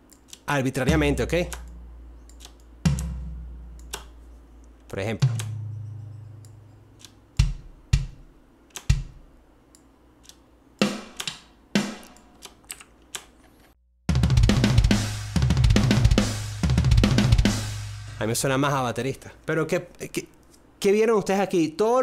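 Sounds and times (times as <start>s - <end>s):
rock drum groove: 2.9s - 3.6s, 7.4s - 9.3s, 10.8s - 12.2s, 14.1s - 18.5s.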